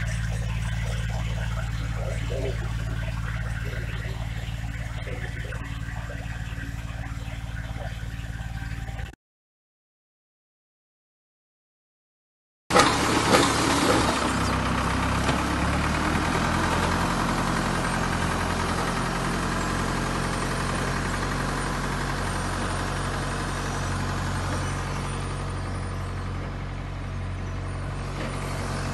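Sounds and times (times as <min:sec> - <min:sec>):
tractor engine running: 0:00.0 - 0:09.2, 0:12.7 - 0:28.9.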